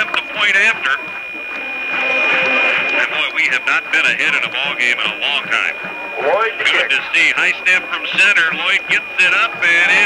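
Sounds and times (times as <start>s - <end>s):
crowd in stadium stands: 0.0s - 10.0s
music: 0.0s - 10.0s
steady high whine: 0.0s - 10.0s.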